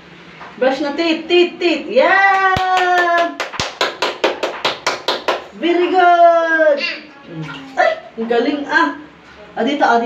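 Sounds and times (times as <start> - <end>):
hands clapping quickly: 2.3 - 5.5.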